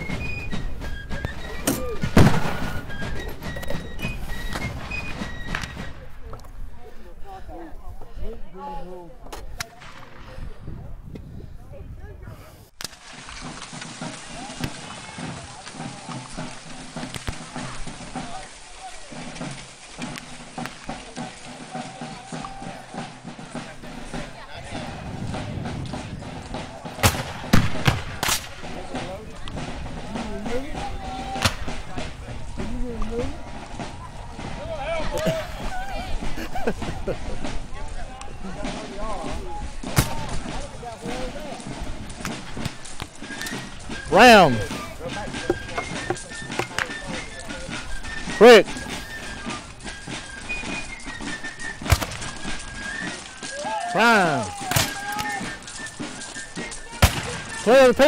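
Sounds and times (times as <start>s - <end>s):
people talking: 0.0s - 4.7s, 5.5s - 12.7s, 14.1s - 19.5s, 20.9s - 51.6s, 52.4s - 58.0s
black-powder gunshots: 2.0s - 2.9s, 26.9s - 28.8s, 57.0s - 57.6s.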